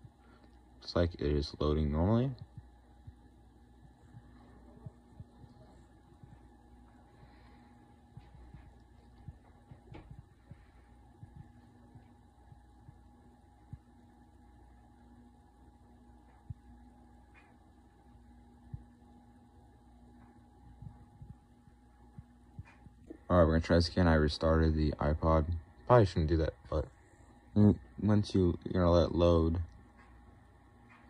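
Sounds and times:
computer hum: 0.0s - 31.0s
faint clicks and knocks: 16.2s - 17.8s, 20.1s - 23.3s, 29.6s - 31.0s.

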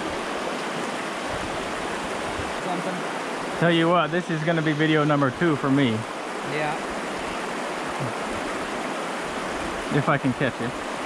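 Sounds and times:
creek water running over rocks: 0.0s - 11.0s.

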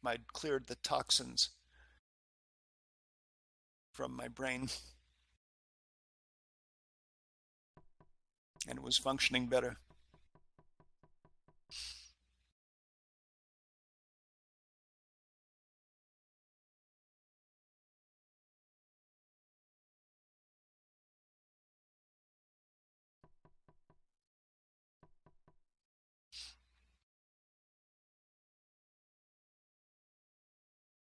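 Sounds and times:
short breathy hiss: 11.7s - 12.2s, 26.4s - 26.7s.

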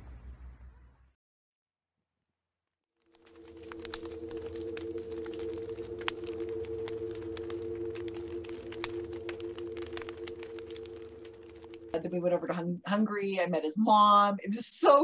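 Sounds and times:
crackles and clicks: 3.0s - 13.5s
low hum: 3.1s - 13.0s
sustained two-tone drone: 3.2s - 12.6s.

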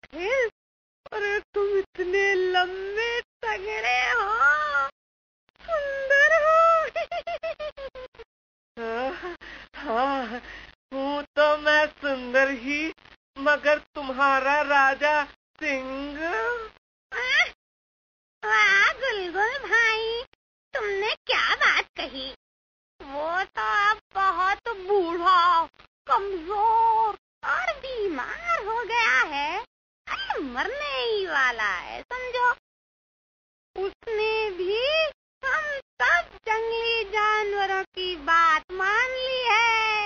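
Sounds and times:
high-pitched voice vocalising: 3.8s - 4.9s, 16.2s - 17.6s.

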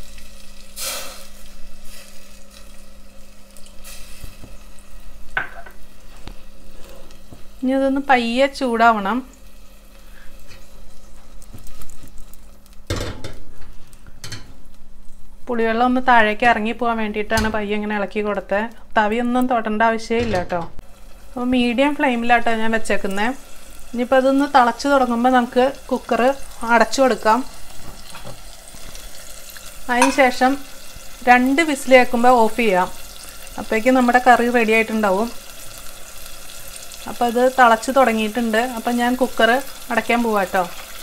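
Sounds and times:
food cooking in pot: 0.0s - 15.4s, 20.8s - 41.0s
woman speaking: 7.6s - 9.3s, 15.5s - 20.8s, 21.4s - 23.4s, 29.9s - 30.6s, 31.3s - 32.9s.

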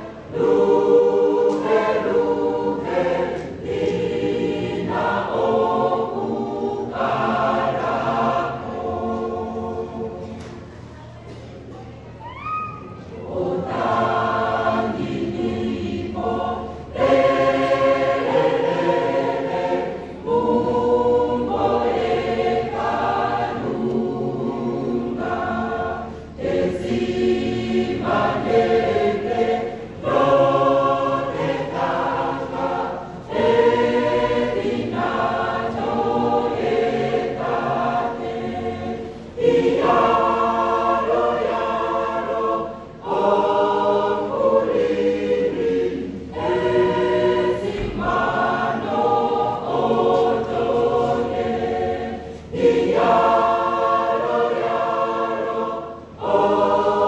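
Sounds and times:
mixed choir singing: 0.0s - 10.7s, 12.8s - 57.0s.

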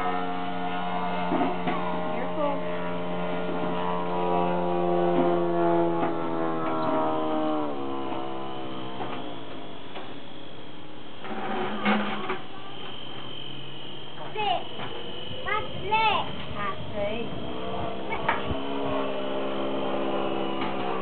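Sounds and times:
model plane propeller whining: 0.0s - 21.0s.

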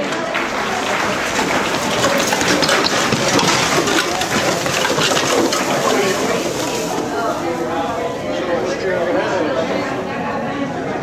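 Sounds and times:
plastic costumes rustling and crinkling: 0.4s - 8.9s.

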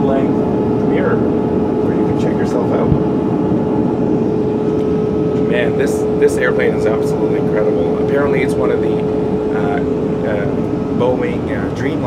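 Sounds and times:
airliner cabin noise: 0.0s - 12.0s.

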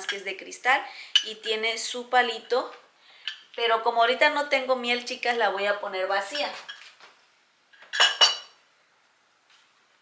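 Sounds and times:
glass jar clinking: 7.9s - 8.6s.

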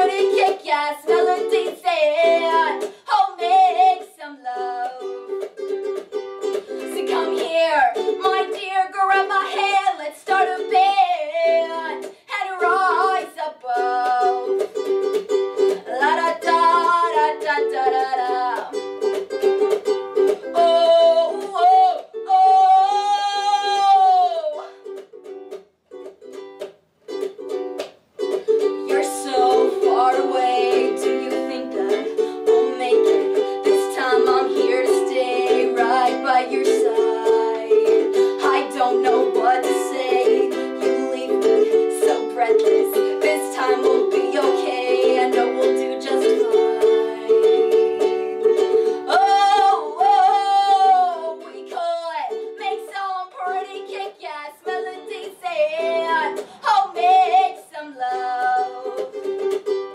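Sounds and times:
woman singing: 0.0s - 5.5s, 6.6s - 14.9s, 15.7s - 18.9s, 20.4s - 24.7s, 28.6s - 59.6s
ukulele strumming: 0.0s - 59.9s.

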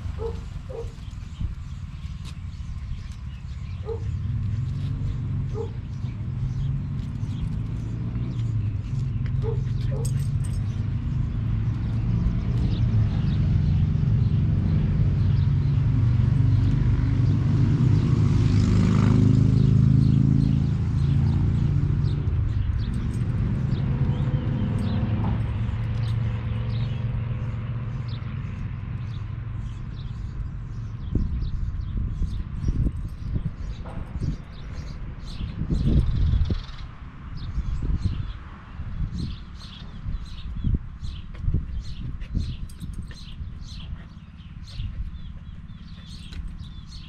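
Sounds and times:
small birds chirping: 0.0s - 47.0s
wind rumbling on microphone: 0.0s - 47.0s.

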